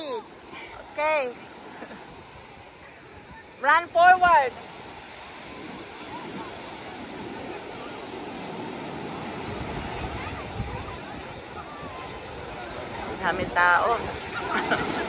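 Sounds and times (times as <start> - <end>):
waves breaking on sandy beach: 0.0 - 15.0
faint voices of people: 5.0 - 15.0.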